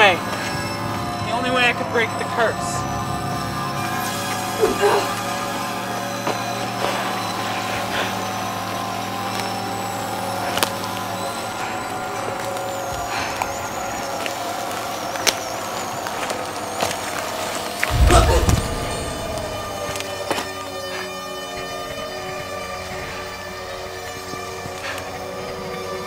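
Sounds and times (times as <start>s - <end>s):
drone of layered tones: 17.8s - 21.4s
sharp hits: 17.9s - 20.5s.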